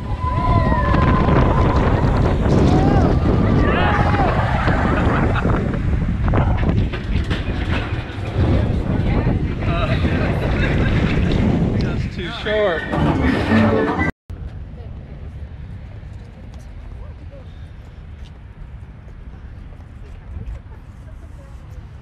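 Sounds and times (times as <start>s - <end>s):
riders whooping and shouting: 0.0s - 5.4s
wind rushing over microphone: 0.0s - 13.6s
coaster cars rumbling on track: 0.0s - 17.4s.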